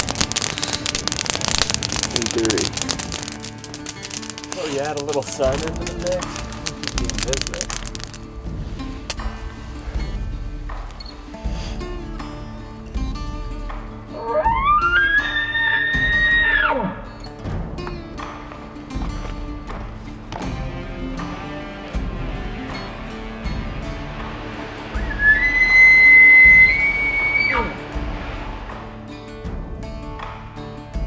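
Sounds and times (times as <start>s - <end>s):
background music: 0.0s - 31.0s.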